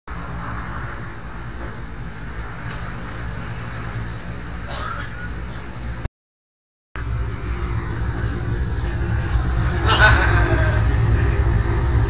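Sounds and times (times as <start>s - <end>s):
vehicle engine idling: 7.0s - 12.0s.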